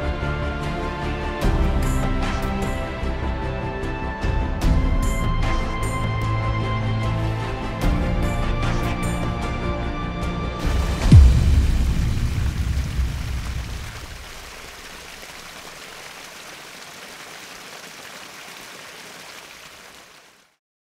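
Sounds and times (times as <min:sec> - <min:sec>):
music: 0:00.0 - 0:13.5
running water rushing: 0:10.6 - 0:20.5
deep boom falling in pitch: 0:10.8 - 0:14.2.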